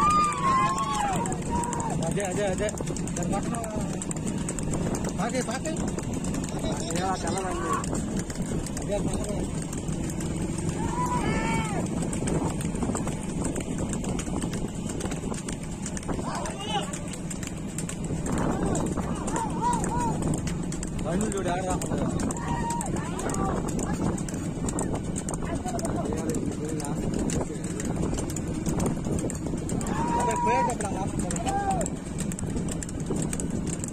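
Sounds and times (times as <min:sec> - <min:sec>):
men shouting calls: 0:00.0 - 0:02.6, 0:06.7 - 0:08.1, 0:10.6 - 0:11.9, 0:18.3 - 0:20.3, 0:21.7 - 0:24.0, 0:29.6 - 0:32.0
hooves clopping on pavement: 0:00.0 - 0:33.9.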